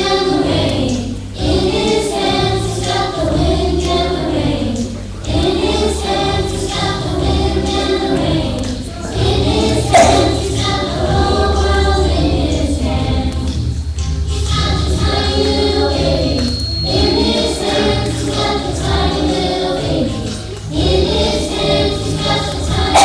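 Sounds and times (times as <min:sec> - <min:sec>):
children singing in unison: 0:00.0 - 0:23.0
low accompaniment: 0:09.1 - 0:23.0.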